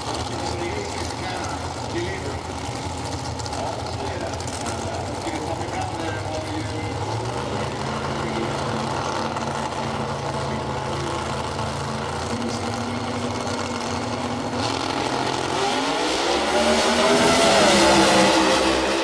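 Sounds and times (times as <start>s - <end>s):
drag racing car engines revving: 0.0s - 19.0s.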